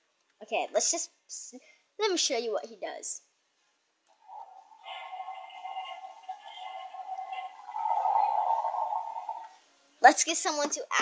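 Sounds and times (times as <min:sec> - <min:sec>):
tinny electronic toy sound effect: 0:04.1 - 0:09.6.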